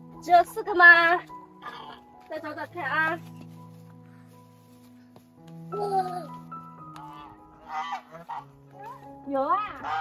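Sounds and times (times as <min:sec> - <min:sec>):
geese honking: 0:06.9 - 0:10.0.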